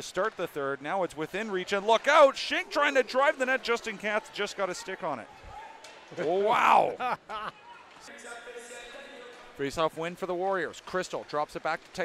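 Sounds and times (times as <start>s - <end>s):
man laughing: 6.6s - 7.6s.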